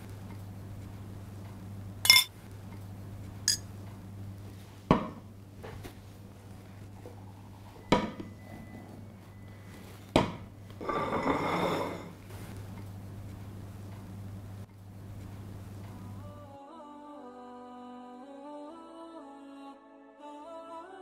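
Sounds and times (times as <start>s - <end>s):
dishes clinking on wooden counter: 2.1s - 2.3s, 7.9s - 8.4s, 10.2s - 12.2s
low hum: 6.1s - 10.8s
plate scraping across counter: 10.8s - 12.2s.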